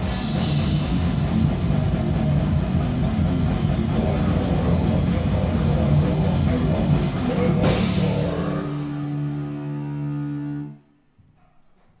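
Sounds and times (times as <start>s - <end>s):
distorted metal guitar chord: 0.0s - 10.8s.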